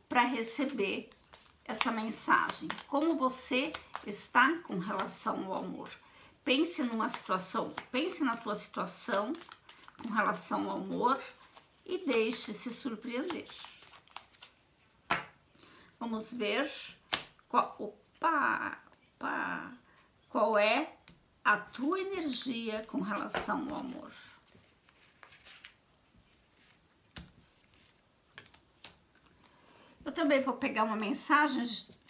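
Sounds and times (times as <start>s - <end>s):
cards shuffled by hand: 0.9s - 6.0s, 6.6s - 14.6s, 21.7s - 25.8s, 26.5s - 29.6s.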